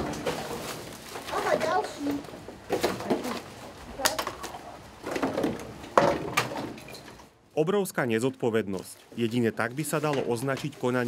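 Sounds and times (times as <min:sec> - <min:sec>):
plastic bottles clicking and rustling: 0:00.0 - 0:07.3, 0:09.8 - 0:11.0.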